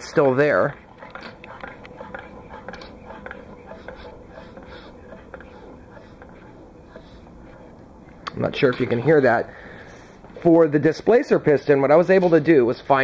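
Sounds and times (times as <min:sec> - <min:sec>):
faint air puffs from cylinder: 0:09.4 - 0:10.4.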